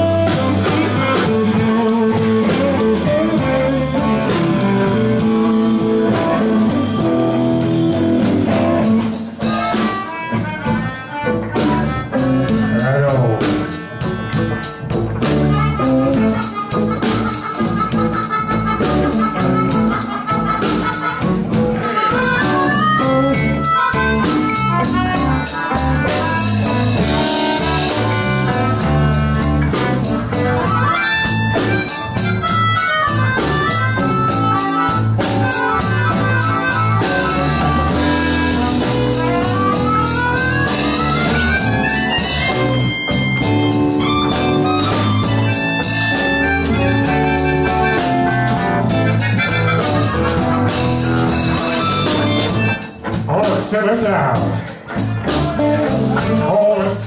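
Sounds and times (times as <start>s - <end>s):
melodica sliding lead notes: 0.0s - 53.2s
drums: 0.0s - 57.0s
electric bass: 0.0s - 57.0s
electric guitar: 0.0s - 57.0s.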